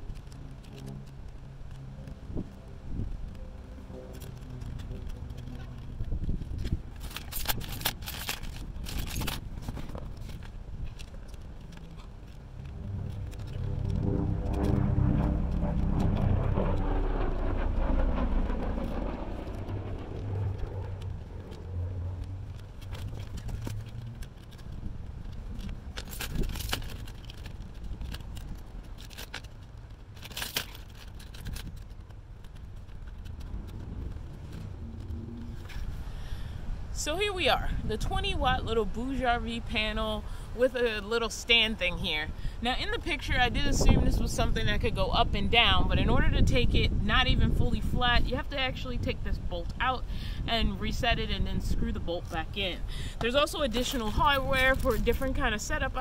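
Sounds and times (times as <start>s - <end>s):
metal hardware clicks and scrapes: 4.1s - 12.4s, 25.6s - 33.4s
passing car: 12.6s - 25.0s.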